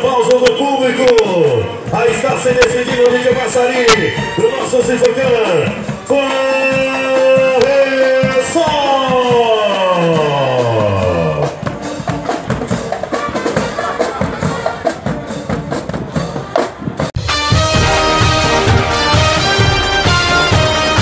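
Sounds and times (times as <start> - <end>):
drums and percussion strikes: 0.0 - 21.0
brass chord sliding down: 17.2 - 21.0.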